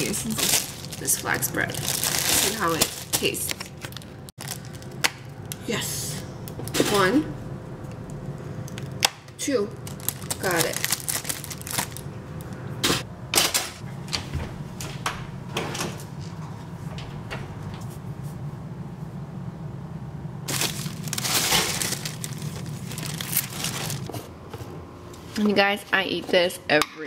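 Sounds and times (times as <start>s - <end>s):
plastic bread bag crinkling: 0.0s - 5.0s, 9.7s - 12.1s, 20.5s - 24.1s
steady low hum: 0.0s - 27.0s.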